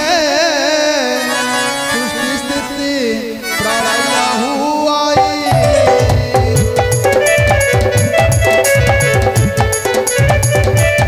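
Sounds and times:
harmonium chords and melody: 0.0s - 11.0s.

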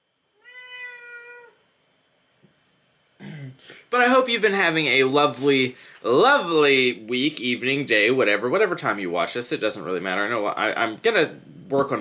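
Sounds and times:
cat meowing: 0.4s - 1.6s.

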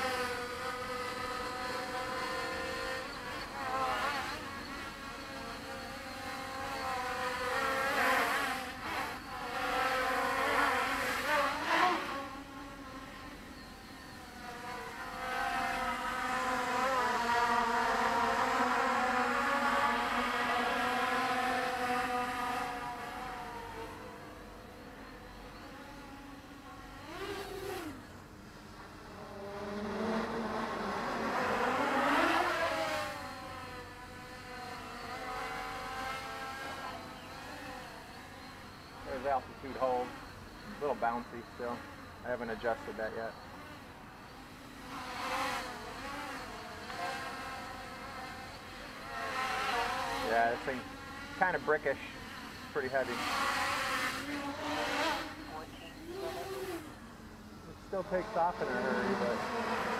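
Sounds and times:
quadcopter propellers whining: 0.0s - 59.9s.

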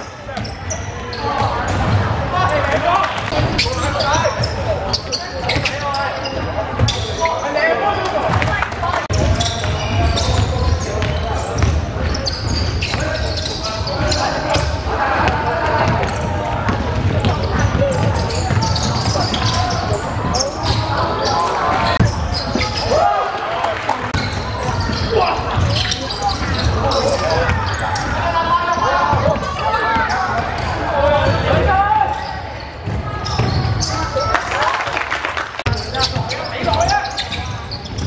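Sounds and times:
players and onlookers talking: 0.0s - 38.0s
basketball bouncing on court: 8.2s - 22.8s, 32.8s - 33.9s.

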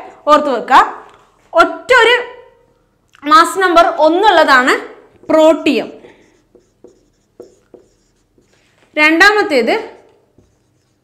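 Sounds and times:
marker writing on whiteboard: 5.2s - 11.0s.

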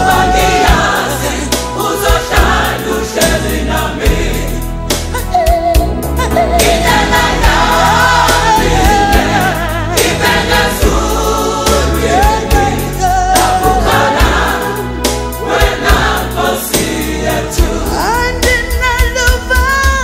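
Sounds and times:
gospel choir singing: 0.0s - 19.7s.

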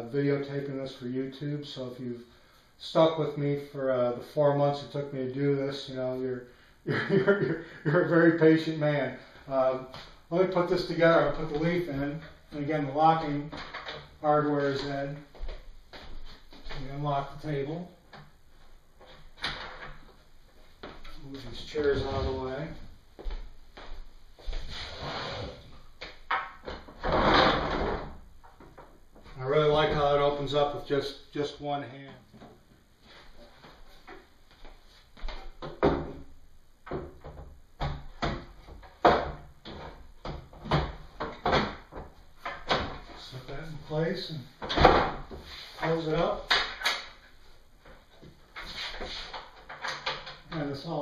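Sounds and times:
wooden knocks and thuds: 35.2s - 43.1s.

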